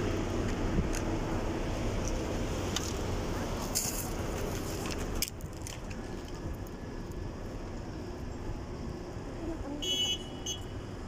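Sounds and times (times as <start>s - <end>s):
road traffic rumble: 0.0s - 11.0s
high-pitched horn toots: 9.4s - 10.8s.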